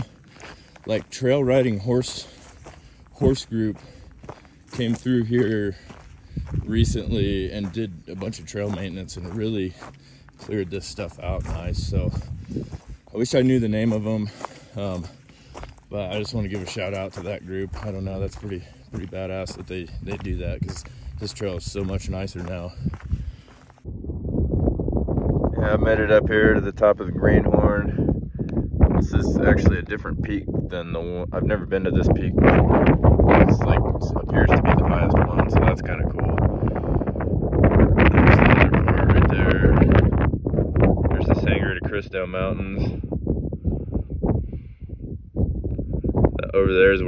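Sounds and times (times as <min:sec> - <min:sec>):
quiet trail ambience: 0:00.0 - 0:47.0
wind buffeting microphone: 0:00.0 - 0:47.0.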